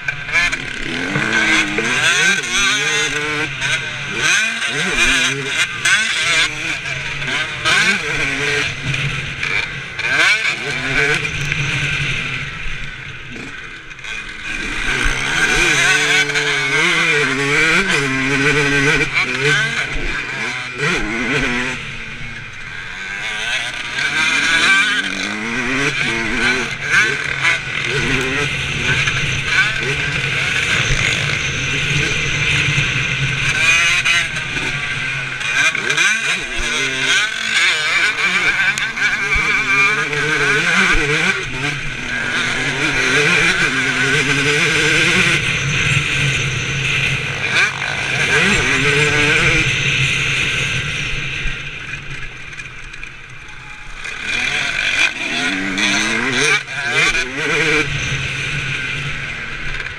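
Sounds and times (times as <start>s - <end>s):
motocross bike engine revving: 0.0s - 59.9s.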